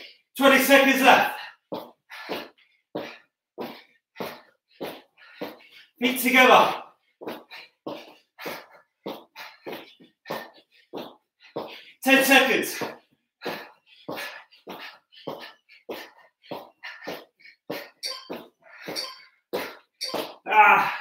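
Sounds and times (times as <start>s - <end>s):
man panting hard: 0.0s - 21.0s
man groaning: 20.4s - 21.0s.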